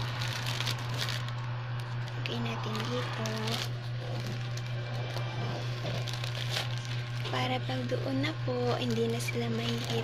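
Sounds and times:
plastic bag crinkling: 0:00.0 - 0:10.0
steady low hum: 0:00.0 - 0:10.0.

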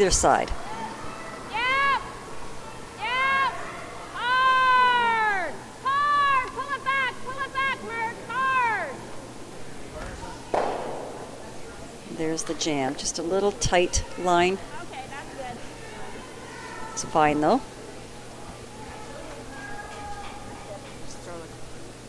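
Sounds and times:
woman shouting drawn-out calls: 0:01.5 - 0:02.1, 0:03.0 - 0:09.0.

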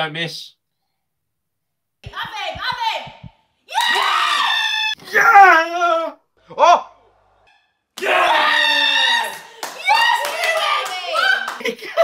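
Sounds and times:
hand clapping: 0:02.0 - 0:04.0, 0:09.3 - 0:12.0
people yelling and cheering: 0:02.1 - 0:06.9, 0:08.0 - 0:11.7.

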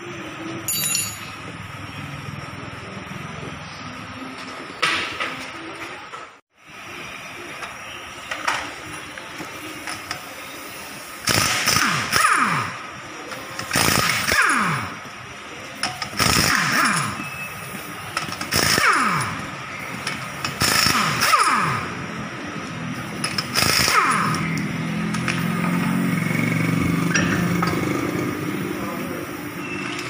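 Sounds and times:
impact wrench bursts: 0:11.0 - 0:15.1, 0:15.7 - 0:30.0.

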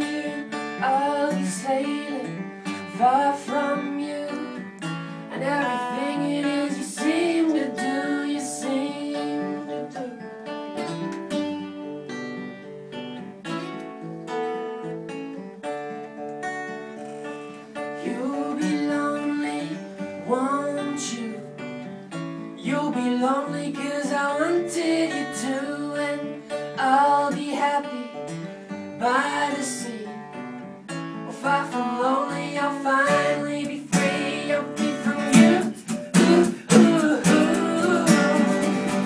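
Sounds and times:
person singing: 0:00.0 - 0:10.4, 0:17.7 - 0:21.8, 0:22.6 - 0:28.3, 0:28.9 - 0:30.4, 0:31.2 - 0:39.0
acoustic guitars strummed: 0:00.0 - 0:39.0.

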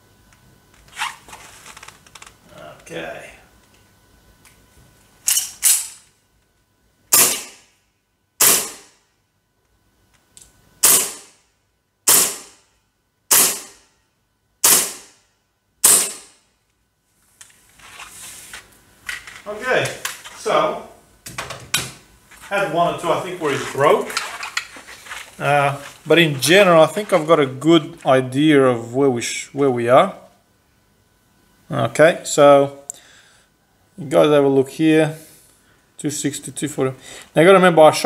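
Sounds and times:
gel blaster pistol shots: 0:07.1 - 0:07.7, 0:08.4 - 0:08.9, 0:10.8 - 0:11.3, 0:12.1 - 0:12.6, 0:13.3 - 0:13.8, 0:14.6 - 0:15.2, 0:15.8 - 0:16.4.

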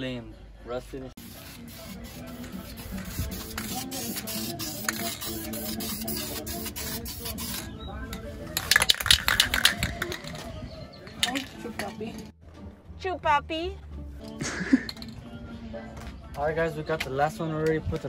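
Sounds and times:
background music: 0:00.0 - 0:18.0
spray-paint can hissing: 0:01.2 - 0:07.7.

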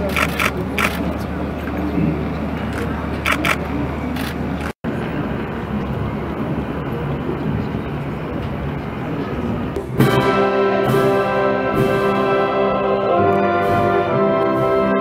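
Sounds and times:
crowd murmur and chatter: 0:00.0 - 0:15.0.

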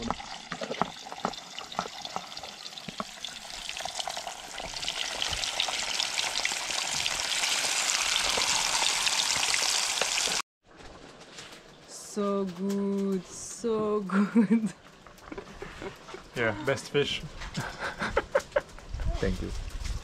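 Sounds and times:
fish frying in hot oil: 0:00.0 - 0:10.4.

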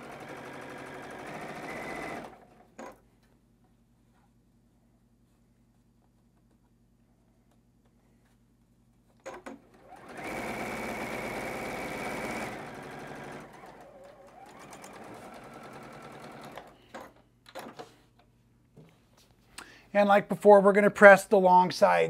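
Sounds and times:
sewing machine stitching: 0:00.0 - 0:03.0, 0:09.2 - 0:17.8.

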